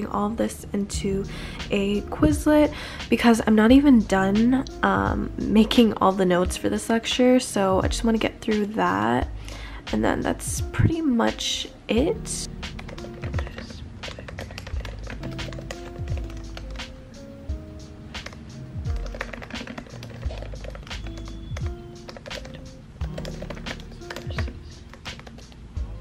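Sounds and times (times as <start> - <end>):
background music with steady beat: 0.0 - 26.0
laptop keyboard typing: 12.6 - 17.2, 18.1 - 25.6.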